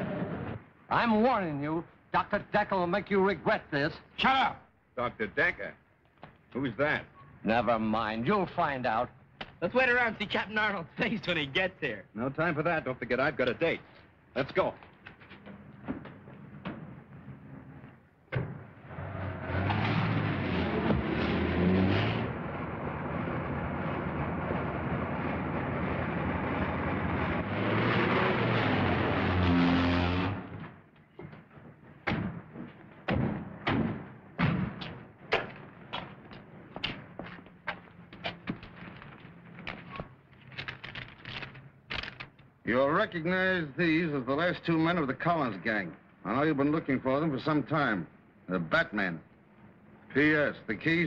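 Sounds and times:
old car engines: 14.8 - 42.7
tyre noise: 34.6 - 42.2.

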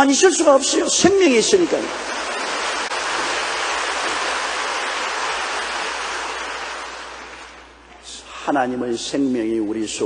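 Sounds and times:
congregation applauding: 1.0 - 7.8.

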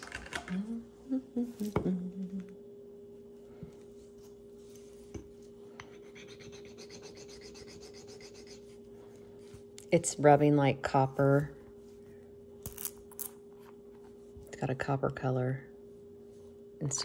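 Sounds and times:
metal rubbing on stone rasp: 6.0 - 8.7.

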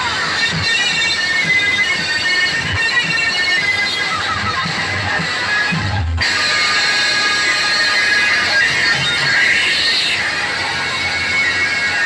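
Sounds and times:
loud music from speakers: 0.0 - 12.0.

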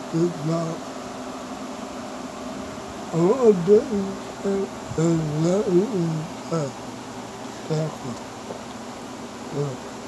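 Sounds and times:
man making gliding vocal sounds: 0.0 - 0.8, 3.1 - 6.8, 7.6 - 8.2, 9.5 - 9.9.

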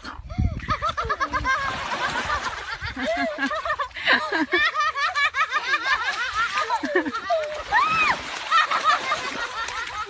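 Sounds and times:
high-pitched laughter: 0.4 - 10.0.

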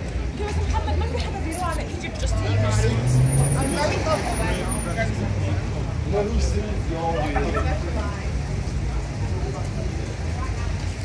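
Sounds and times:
people talking: 0.2 - 11.0
vehicle engine accelerating: 2.2 - 6.8.

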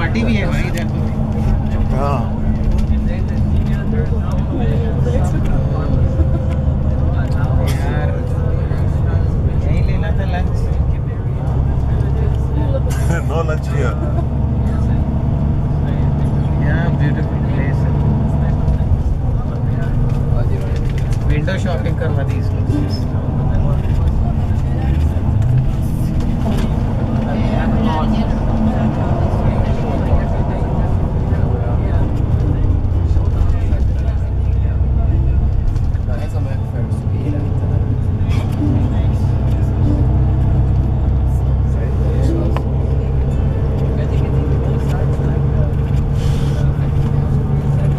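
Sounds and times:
bus engine and road rumble: 0.0 - 47.9
indistinct passenger voices: 0.0 - 47.9.

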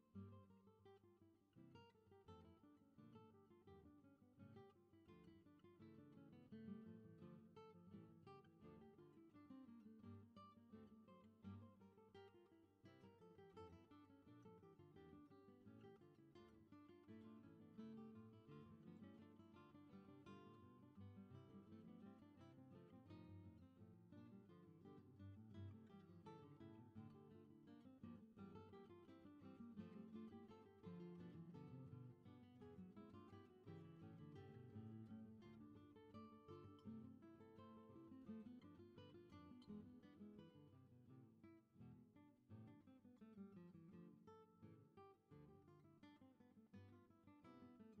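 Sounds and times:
plucked acoustic guitar music: 0.0 - 48.0.

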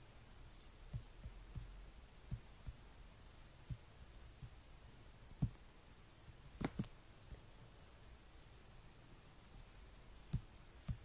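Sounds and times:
room hum: 0.0 - 11.0
soft low thumps: 0.8 - 3.0, 3.6 - 4.7, 5.4 - 5.6, 10.3 - 11.0.

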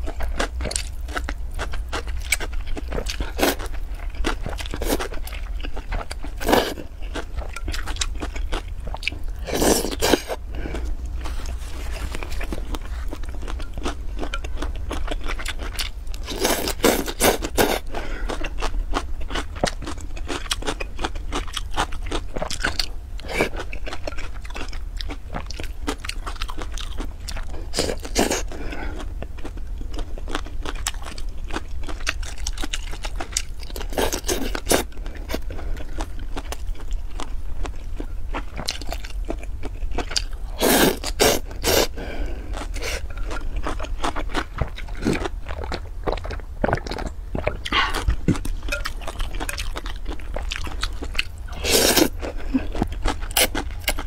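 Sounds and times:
wet crunchy chewing: 0.0 - 54.0.

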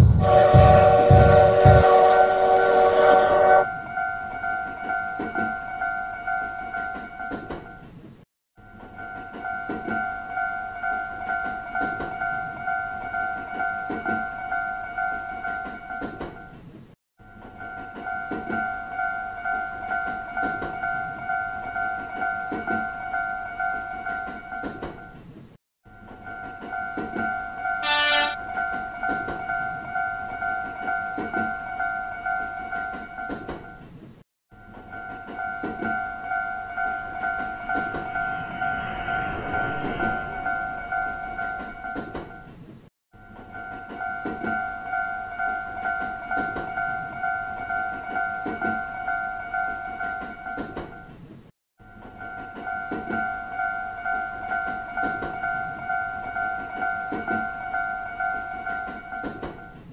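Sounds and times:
train horn toot: 0.0 - 3.8, 27.8 - 28.5
approaching train rush: 0.0 - 4.0, 34.9 - 42.7
railroad crossing bell ringing: 0.2 - 7.9, 8.6 - 16.6, 17.2 - 25.2, 25.9 - 33.8, 34.6 - 42.5, 43.2 - 51.1, 51.8 - 59.9.

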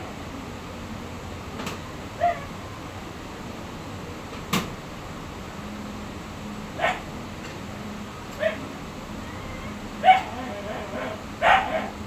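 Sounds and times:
low background hum: 0.0 - 12.0
dog barking: 2.2 - 2.5, 6.8 - 7.1, 8.4 - 8.6, 10.0 - 12.0.

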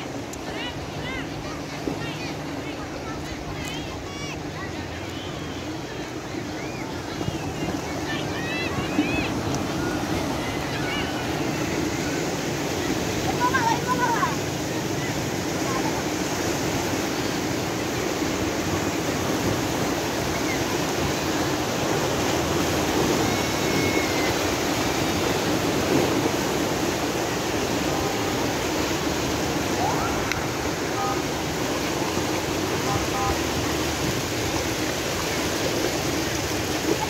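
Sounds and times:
tidal bore waves rushing: 0.0 - 37.0.

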